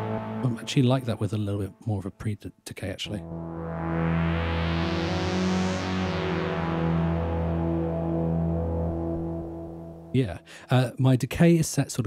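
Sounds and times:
synth playing gliding low notes: 0.0s - 2.2s, 3.1s - 10.6s.

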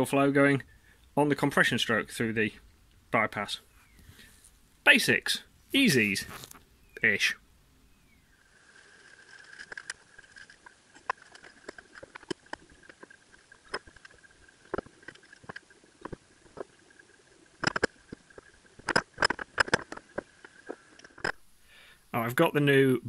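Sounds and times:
faint high whine: 0.0s - 23.0s
metal parts clicking and knocking: 17.6s - 18.0s, 18.8s - 21.4s.

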